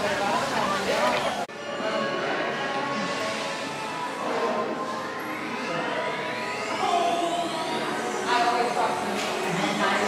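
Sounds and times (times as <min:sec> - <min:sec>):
ambient electronic music: 0:02.8 - 0:09.9
rising synthesized whine: 0:02.9 - 0:09.0.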